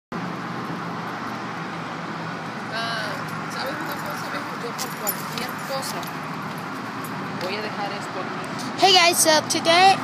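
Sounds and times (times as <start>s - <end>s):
low traffic hum: 0.1s - 10.0s.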